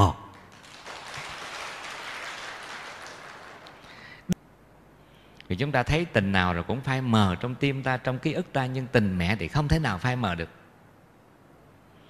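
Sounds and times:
audience applauding: 0:00.3 - 0:04.2.

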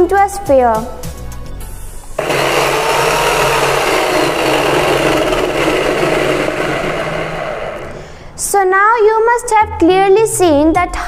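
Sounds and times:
electric drill running: 0:02.2 - 0:08.2.

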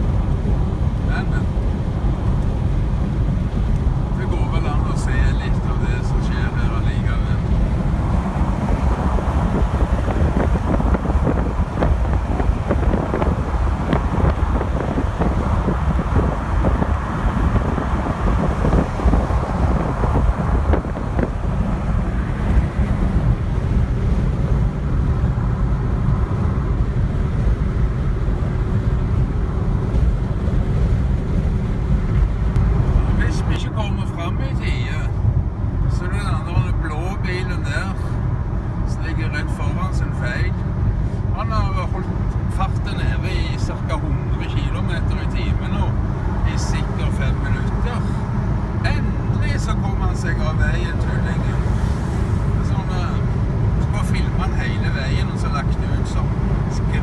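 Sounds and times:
wind rushing: 0:00.0 - 0:36.0, 0:50.5 - 0:57.0
car road and engine noise: 0:00.0 - 0:57.0.

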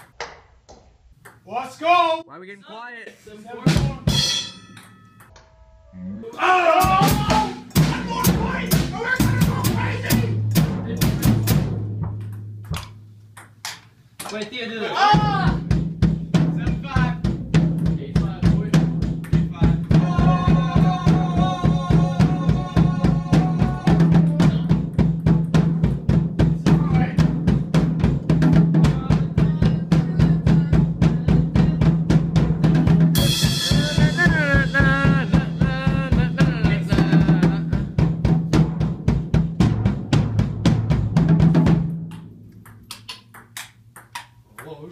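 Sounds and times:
drum and cymbal strikes: 0:03.7 - 0:04.8, 0:06.8 - 0:12.2, 0:15.2 - 0:42.0.

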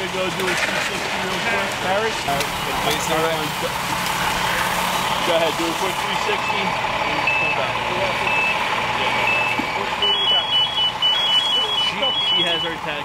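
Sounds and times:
idling engines hum: 0:00.0 - 0:13.0
electronic warning beeps: 0:04.3 - 0:12.8
two-pitch alternating beeping: 0:06.1 - 0:12.8.

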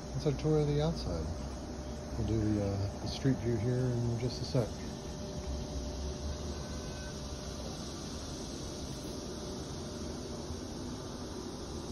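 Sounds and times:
outdoor background hiss: 0:00.0 - 0:11.9.

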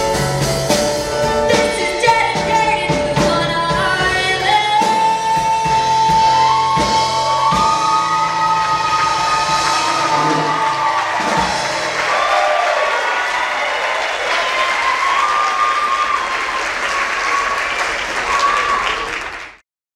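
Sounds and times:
song with backing track: 0:00.0 - 0:12.1
audience cheering: 0:05.8 - 0:19.6
audience applauding: 0:06.4 - 0:19.6.

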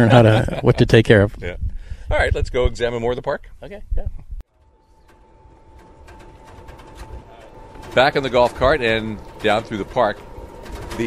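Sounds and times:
golf cart whining: 0:04.5 - 0:11.0.

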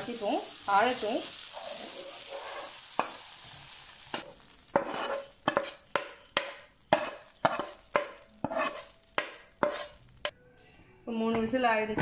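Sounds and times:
vegetables sizzling in frying pan: 0:00.0 - 0:10.3.

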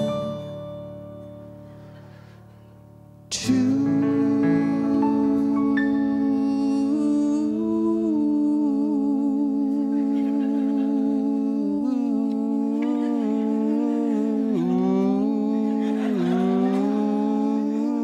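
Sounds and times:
men humming in harmony: 0:03.3 - 0:18.0.

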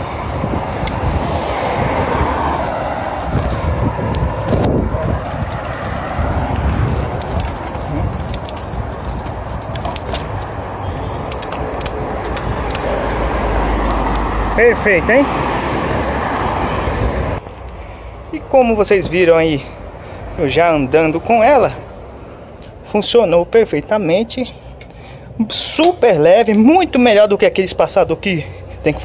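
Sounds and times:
wind on microphone: 0:00.0 - 0:14.6, 0:15.2 - 0:17.5
bicycle tyres on asphalt: 0:00.0 - 0:18.2
road traffic: 0:00.0 - 0:29.0
sharp clicks: 0:09.6 - 0:14.3.

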